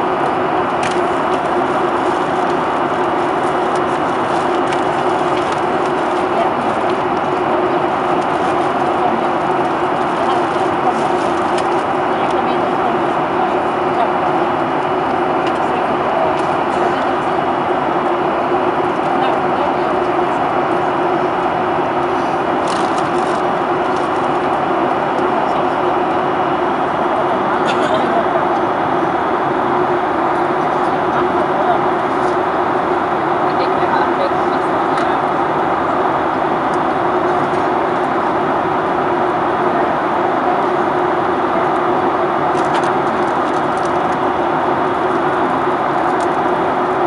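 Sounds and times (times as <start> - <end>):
airplane cabin airflow and engines: 0.0 - 47.0
constant low hum: 0.0 - 47.0.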